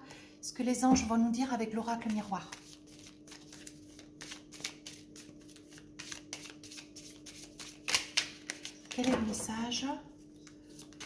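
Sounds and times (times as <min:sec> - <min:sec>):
cards shuffled by hand: 0:02.1 - 0:09.1, 0:10.4 - 0:11.0.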